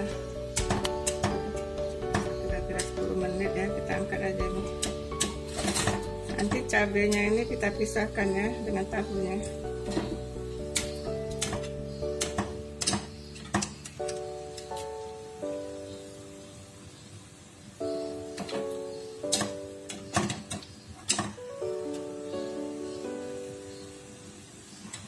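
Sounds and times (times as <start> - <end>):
slow guitar music: 0.0 - 15.8.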